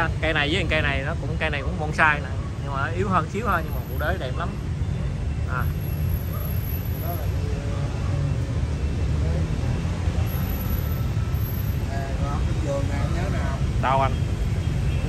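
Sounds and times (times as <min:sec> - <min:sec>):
faint voices talking: 0:00.0 - 0:15.0
road traffic rumble: 0:00.0 - 0:15.0.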